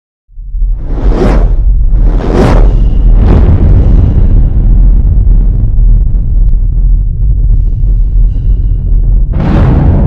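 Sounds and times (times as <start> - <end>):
deep rumble: 0.3 - 10.0.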